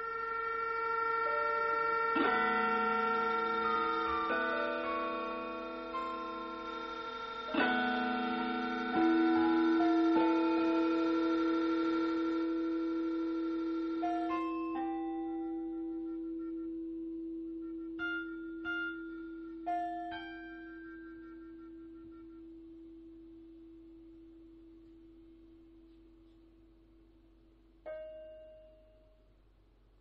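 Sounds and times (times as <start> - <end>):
electronic drone music: 0.0 - 22.5.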